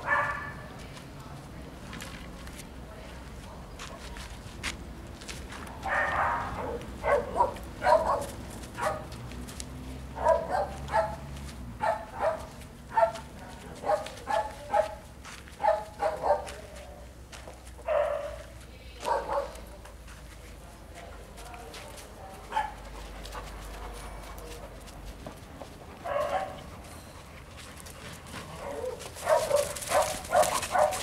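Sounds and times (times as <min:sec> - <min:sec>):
dog barking: 0:00.0 - 0:00.6, 0:05.8 - 0:09.1, 0:10.2 - 0:11.2, 0:11.8 - 0:13.2, 0:13.8 - 0:15.0, 0:15.6 - 0:16.6, 0:17.8 - 0:18.4, 0:19.0 - 0:19.6, 0:22.5 - 0:22.8, 0:26.0 - 0:26.6, 0:28.6 - 0:31.0
dog drawn-out call: 0:28.5 - 0:31.0.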